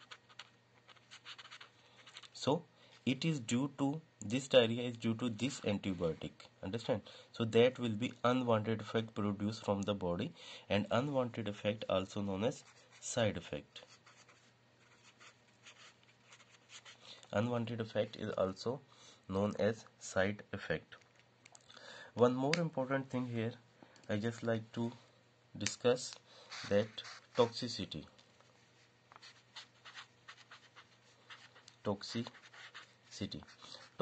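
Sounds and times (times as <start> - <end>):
marker pen scratching on paper: 0.0 - 2.4, 12.5 - 13.2, 13.8 - 17.1, 26.4 - 27.8, 28.8 - 34.0.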